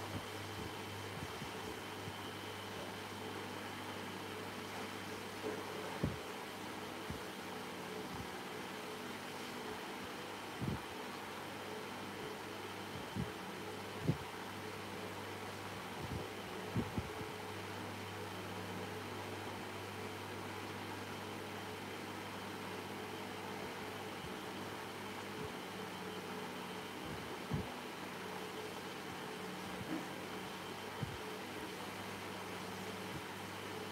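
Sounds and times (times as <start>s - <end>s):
low machine hum with hiss: 0.0s - 33.9s.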